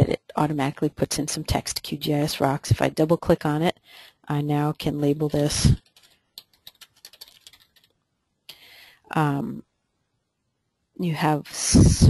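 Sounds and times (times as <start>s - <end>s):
computer keyboard typing: 5.1s - 8.0s.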